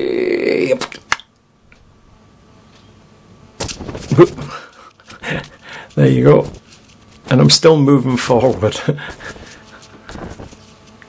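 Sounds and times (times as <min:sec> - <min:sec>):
landing on shingle pebbles: 0:03.6 - 0:11.0
man breathing in bursts: 0:04.5 - 0:05.9.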